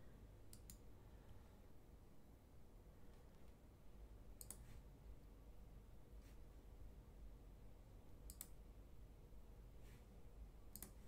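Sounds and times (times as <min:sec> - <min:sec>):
computer mouse clicks: 0:00.5 - 0:00.8, 0:04.4 - 0:04.8, 0:08.3 - 0:08.6, 0:10.7 - 0:11.0.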